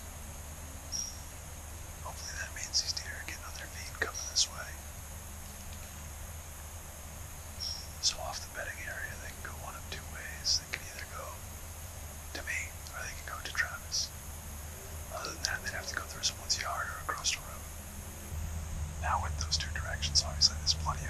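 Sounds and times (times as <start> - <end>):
steady low hum: 0.0 - 21.0
man whispering: 2.0 - 4.8, 8.0 - 11.4, 12.3 - 14.1, 15.1 - 17.8, 19.0 - 21.0.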